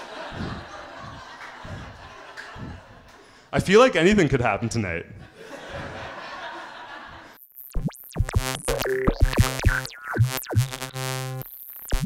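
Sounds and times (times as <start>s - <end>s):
audience laughing: 0.0s - 3.3s, 5.3s - 7.4s.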